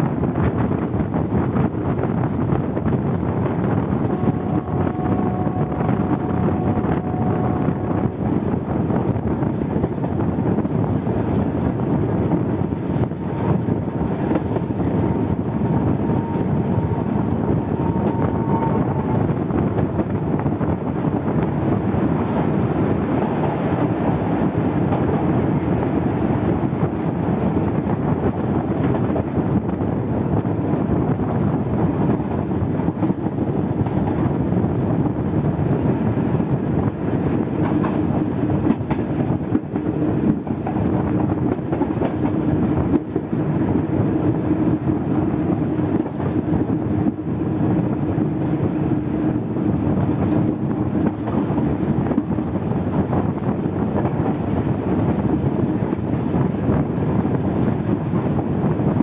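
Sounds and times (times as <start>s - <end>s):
railcar wheels and engine rumbling: 0.0s - 59.0s
wind across microphone: 0.0s - 59.0s.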